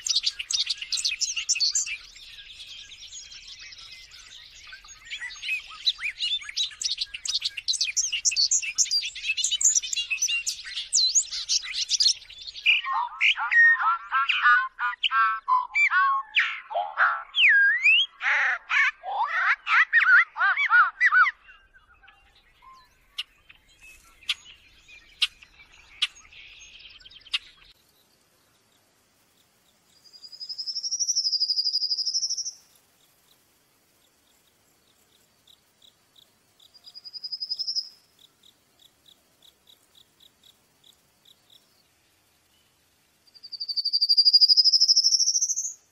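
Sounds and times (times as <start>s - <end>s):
songbird chirping and trilling: 0.0s - 45.9s
harsh raspy bird calls: 11.3s - 21.4s
songbird whistle: 15.0s - 18.2s, 30.1s - 32.6s, 36.8s - 38.0s, 43.4s - 45.9s.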